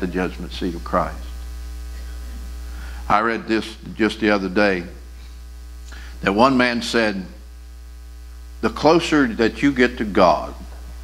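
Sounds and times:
electrical mains hum: 0.0s - 11.0s
faint electrical buzz: 0.0s - 11.0s.

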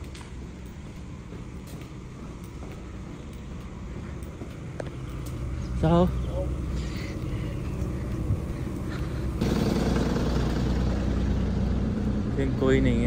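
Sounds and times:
bus engine idling: 0.0s - 13.0s
low outdoor rumble: 0.0s - 13.0s.

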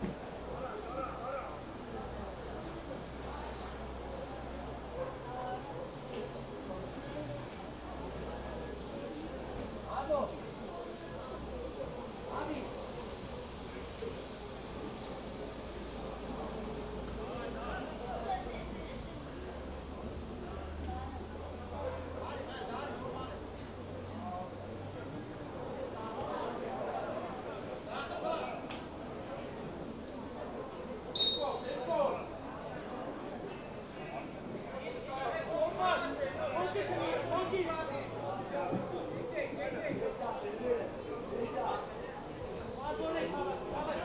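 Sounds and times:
faint distant voices of players: 0.0s - 44.0s.

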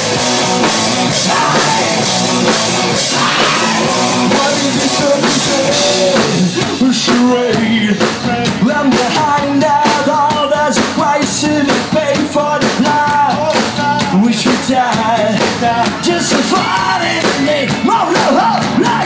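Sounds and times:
rock band playing: 0.0s - 19.0s
man singing: 1.0s - 19.0s.

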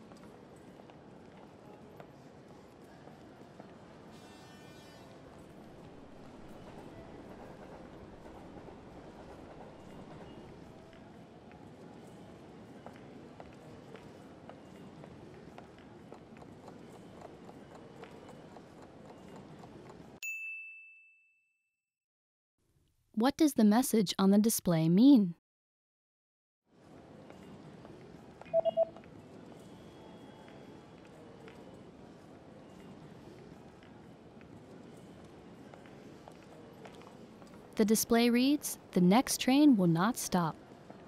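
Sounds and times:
low rumble of rail traffic: 5.3s - 13.6s
short electronic beeps: 28.5s - 29.0s.

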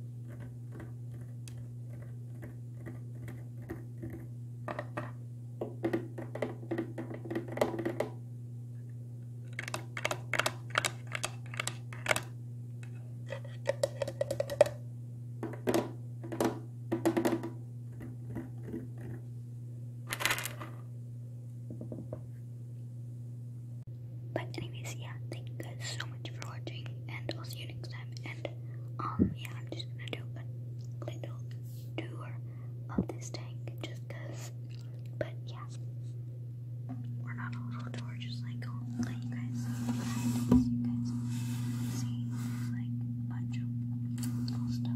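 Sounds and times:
steady low hum: 0.0s - 44.9s
fingers tapping on aquarium glass: 13.7s - 14.8s
person whispering: 24.4s - 34.6s, 35.2s - 35.8s, 37.2s - 43.7s.

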